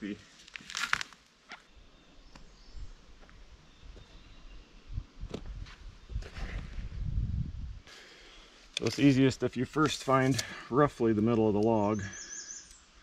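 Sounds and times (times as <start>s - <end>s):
footsteps on soft forest ground: 0.0s - 7.0s, 7.9s - 12.0s.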